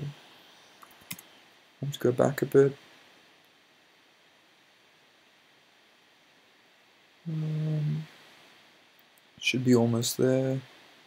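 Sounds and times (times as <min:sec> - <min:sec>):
man humming: 0:07.3 - 0:08.1.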